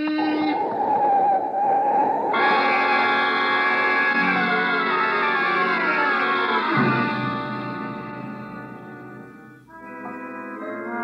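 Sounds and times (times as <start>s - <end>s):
tyres screeching: 2.3s - 10.6s
sustained music sting: 2.4s - 10.6s
car horn blaring: 6.7s - 11.0s.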